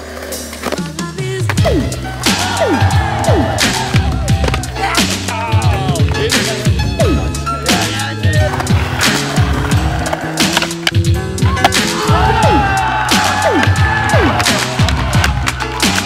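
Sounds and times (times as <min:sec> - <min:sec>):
skateboard wheels rolling: 0:00.0 - 0:02.6, 0:08.2 - 0:16.0
music track: 0:00.5 - 0:16.0
skateboard knocking on concrete: 0:03.9 - 0:04.8, 0:08.4 - 0:12.0.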